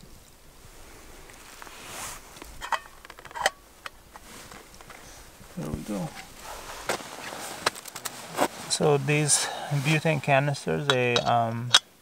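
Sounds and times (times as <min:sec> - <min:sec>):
soft rustle: 0:00.0 - 0:11.2.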